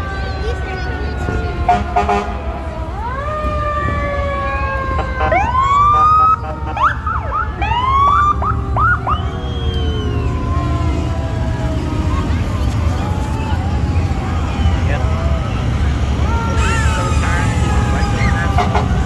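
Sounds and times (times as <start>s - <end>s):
siren whoops: 0.0s - 19.0s
sirens wailing: 0.0s - 19.0s.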